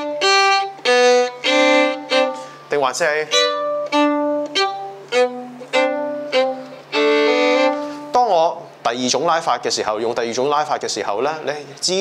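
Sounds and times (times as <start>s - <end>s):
person speaking: 2.1s - 3.6s
solo violin double stops: 3.3s - 8.2s.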